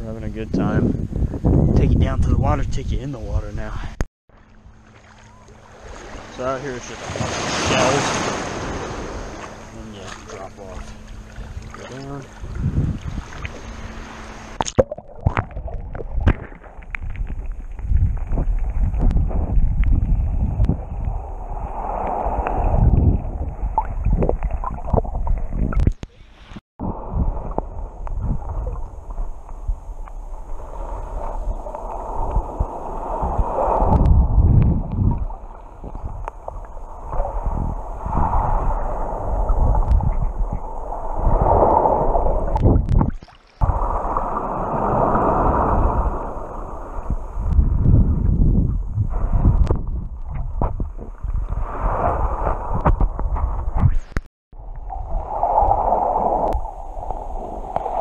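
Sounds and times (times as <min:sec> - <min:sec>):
muffled underwater sloshing and gurgling: 0:05.0 - 0:25.9, 0:26.8 - 0:58.0.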